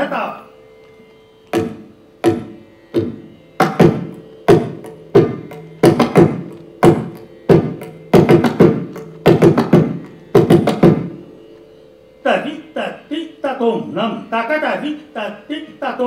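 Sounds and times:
mridangam drum strokes ringing: 1.5 - 11.6.

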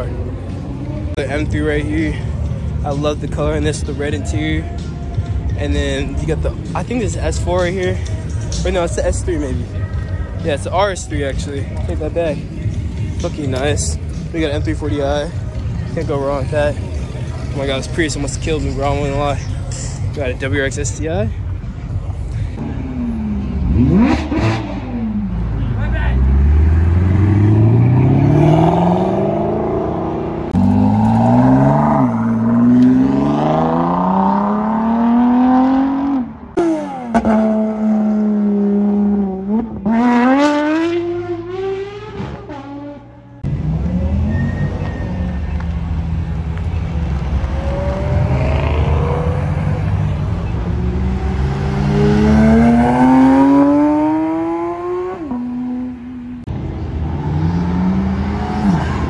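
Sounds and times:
car engine accelerating hard: 22.6 - 59.0.

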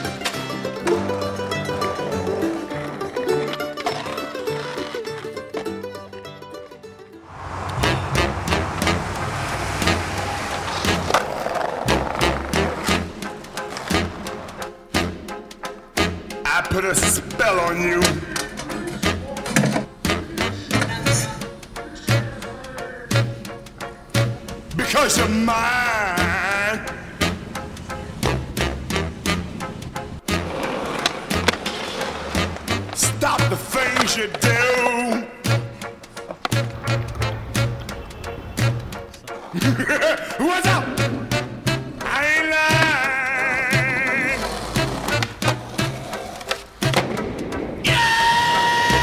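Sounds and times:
skateboard wheels rolling on concrete: 0.0 - 6.4, 7.2 - 16.2, 23.2 - 40.2, 40.9 - 49.0
skateboard clacks and pops: 30.3 - 35.2, 43.8 - 47.6.

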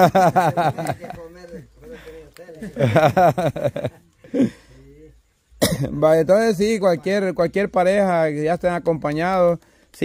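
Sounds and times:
person coughing: 5.6 - 6.0.

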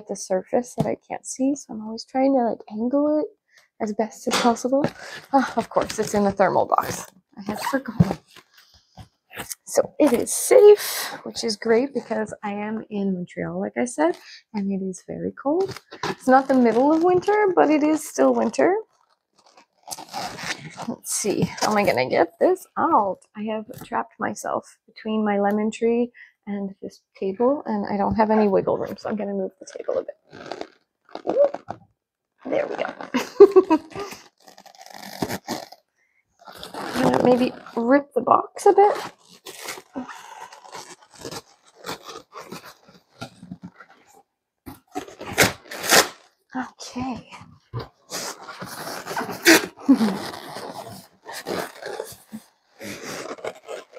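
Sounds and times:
packaging crunching and rustling: 18.9 - 20.9, 30.2 - 31.8, 32.6 - 35.8, 36.4 - 37.8, 39.0 - 46.4, 47.8 - 53.9.

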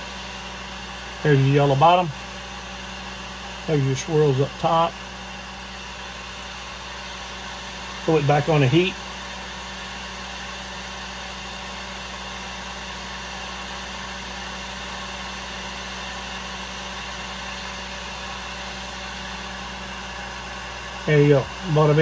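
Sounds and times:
heat gun fan humming: 0.0 - 22.0.

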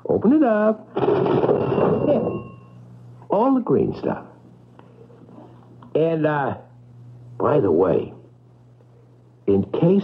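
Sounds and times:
cash register bell ringing: 1.0 - 2.8.

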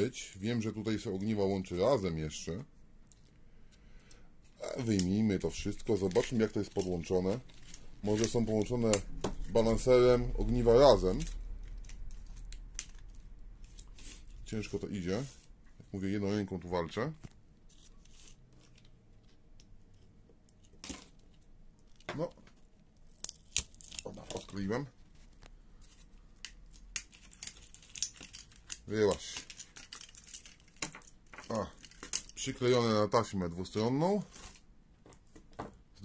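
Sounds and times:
plastic clicks and crackles: 26.4 - 32.5.

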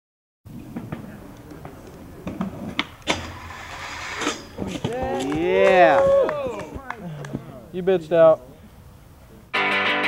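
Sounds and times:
skateboard rolling on concrete: 0.5 - 8.0
skateboard clacks: 4.6 - 7.4.

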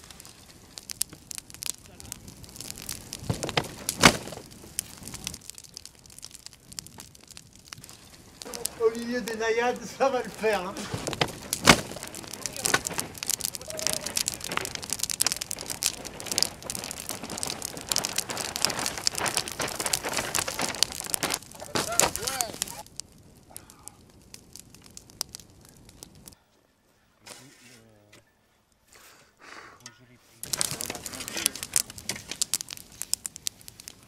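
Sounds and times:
fire crackling and popping: 0.0 - 26.4, 27.2 - 29.2, 29.8 - 34.0.

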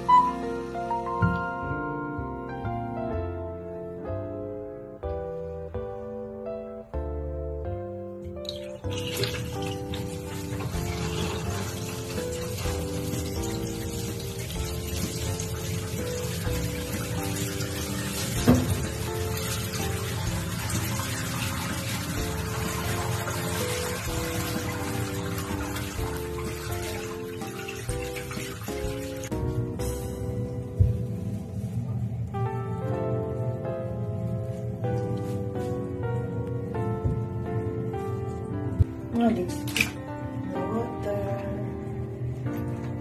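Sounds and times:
melodic background music: 0.0 - 43.0
tap water running into bathtub: 8.3 - 30.2, 38.2 - 40.1.

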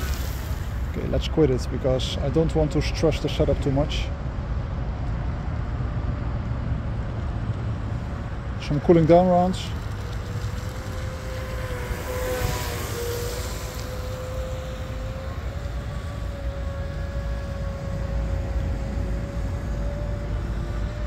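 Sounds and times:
wind rumble on microphone: 0.0 - 21.0
distant boat motor whining: 8.6 - 21.0.

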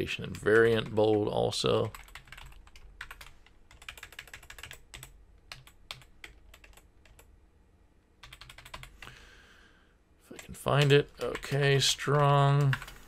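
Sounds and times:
typing on computer keyboard: 1.8 - 7.3, 8.2 - 9.1, 10.8 - 12.9.

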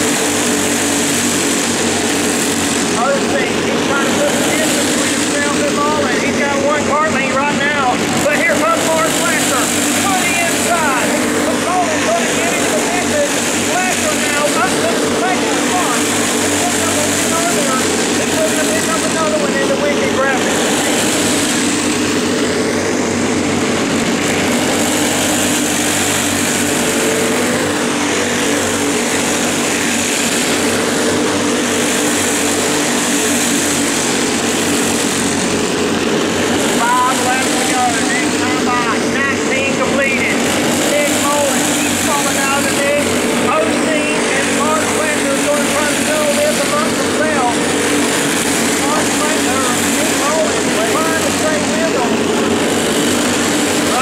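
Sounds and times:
racing kart engines: 0.0 - 54.0.

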